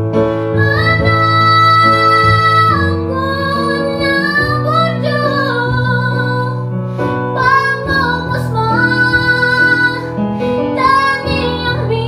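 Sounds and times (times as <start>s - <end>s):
girl singing long held notes: 0.6s - 6.7s, 7.3s - 12.0s.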